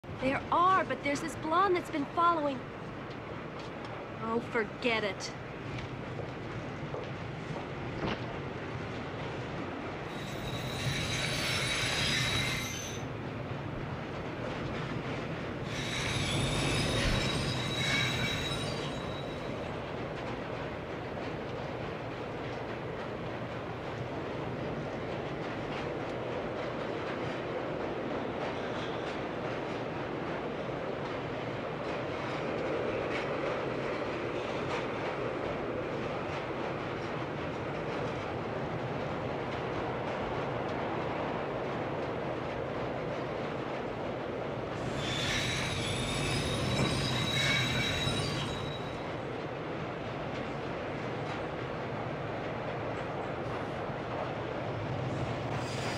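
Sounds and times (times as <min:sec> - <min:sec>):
subway train rumble: 0:00.0 - 0:55.9
train wheels squealing on rails: 0:10.0 - 0:13.2, 0:15.6 - 0:19.8, 0:28.3 - 0:29.8, 0:44.7 - 0:49.4, 0:55.0 - 0:55.9.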